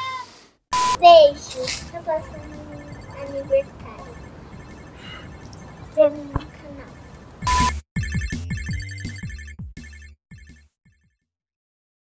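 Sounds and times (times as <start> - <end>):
electronic logo jingle: 1.9 - 10.8.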